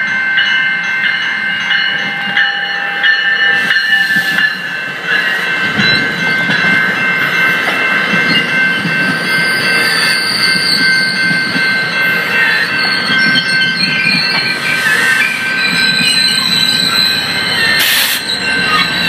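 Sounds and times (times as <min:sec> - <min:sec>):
train coaches rolling rumble: 0:00.0 - 0:19.0
high wheel squeal: 0:09.2 - 0:11.3, 0:12.0 - 0:19.0.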